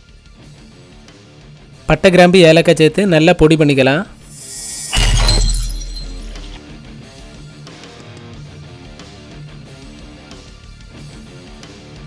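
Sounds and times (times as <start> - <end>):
glass shattering: 4.3 - 6.7.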